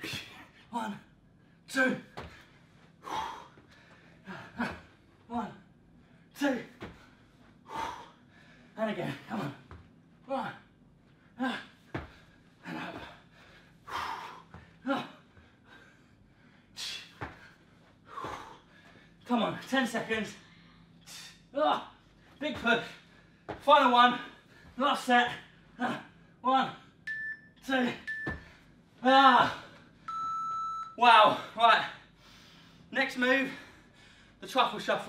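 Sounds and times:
man breathing hard and gasping: 1.6 - 9.7, 11.2 - 19.2, 32.1 - 34.4
thuds of landing on floor: 6.8 - 7.1, 11.9 - 12.2.

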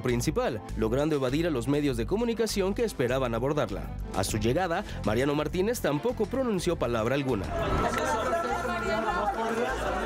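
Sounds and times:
overlapping chatter of people: 7.4 - 10.0.

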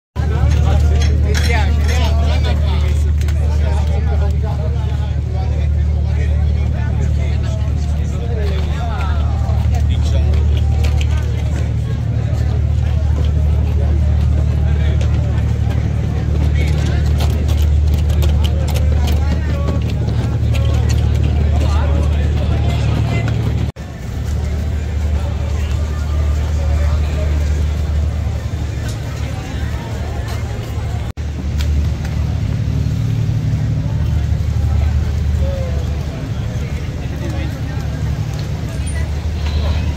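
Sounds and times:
crowd chatter: 0.2 - 39.9
low engine drone: 0.2 - 39.9.

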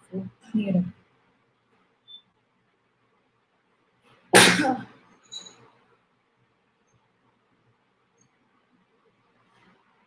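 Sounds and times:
woman sneezing loudly: 4.3 - 5.0.

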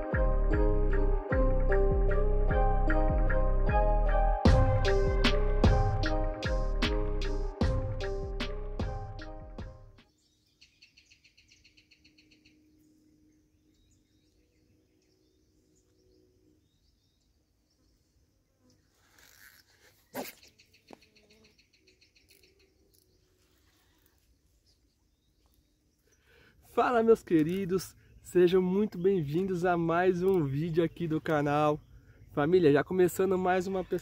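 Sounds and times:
music: 0.0 - 10.1
small birds chirping: 10.0 - 34.0.

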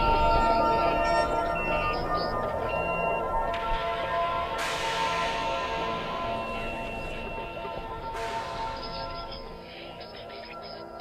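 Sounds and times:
bell-like tones music: 0.0 - 11.0.

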